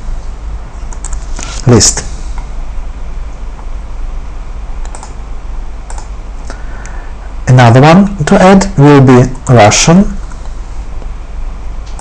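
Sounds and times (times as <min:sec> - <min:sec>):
steady low hum: 0:00.0 - 0:12.0
computer mouse clicks: 0:00.9 - 0:01.3, 0:04.8 - 0:05.2, 0:05.9 - 0:06.1.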